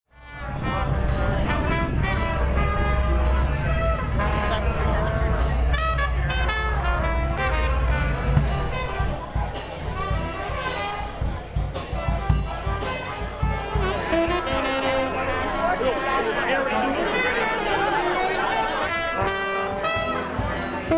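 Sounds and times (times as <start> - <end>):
trombone: 0.1 - 20.9
trumpet: 0.1 - 20.9
bass drum and snare: 0.6 - 15.1.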